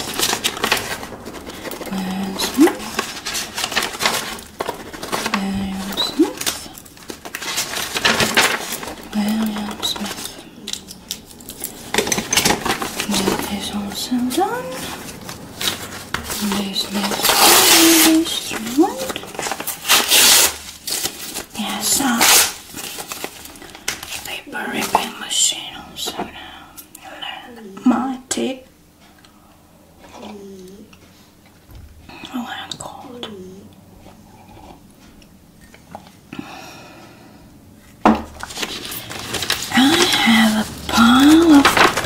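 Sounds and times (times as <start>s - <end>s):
paper shuffling: 0.0s - 25.2s, 38.4s - 42.0s
paper tearing: 14.7s - 23.5s, 38.4s - 42.0s.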